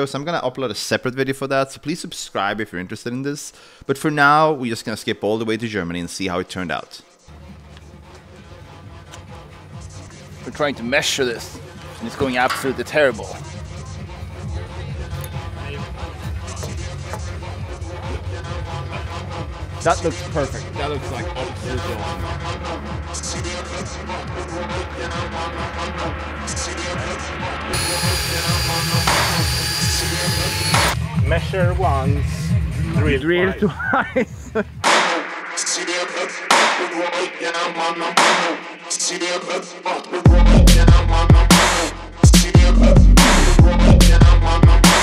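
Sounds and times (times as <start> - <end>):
music with strong steady bass: 7.3 - 45.0.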